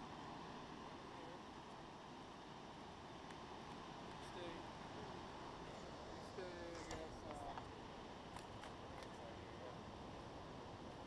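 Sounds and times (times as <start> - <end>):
faint rushing background noise: 0.0 - 11.0.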